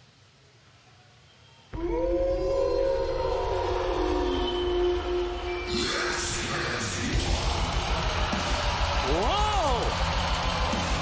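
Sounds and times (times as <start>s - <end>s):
entrance music with held tone: 1.7s - 11.0s.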